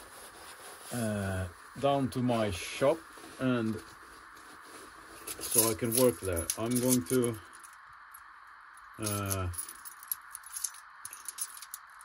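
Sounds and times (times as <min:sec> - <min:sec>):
steady background hiss: 0:00.0 - 0:12.0
keys clicking and ticking: 0:09.0 - 0:12.0.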